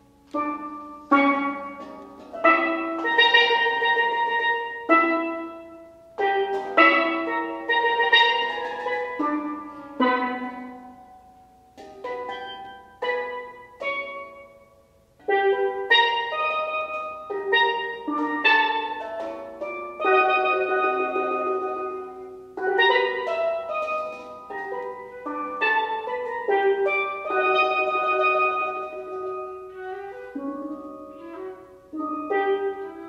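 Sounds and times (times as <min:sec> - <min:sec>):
steel pan notes ringing: 0:00.0 - 0:33.0.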